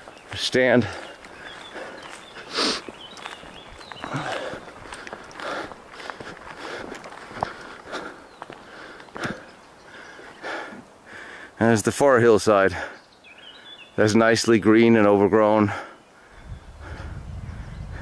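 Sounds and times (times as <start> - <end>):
footsteps through grass: 0.0 - 9.5.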